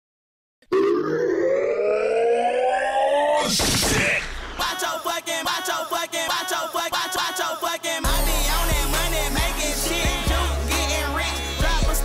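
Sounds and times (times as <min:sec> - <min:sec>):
synthesized riser sweep: 0:00.6 - 0:04.7.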